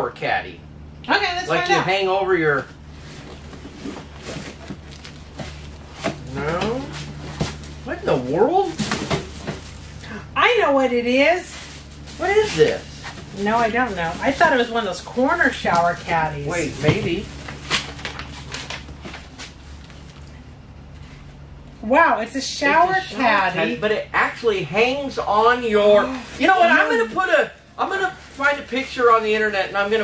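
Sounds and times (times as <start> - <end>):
steady low hum: 0.0 - 30.0
packaging rustling: 3.0 - 6.3, 16.8 - 20.4.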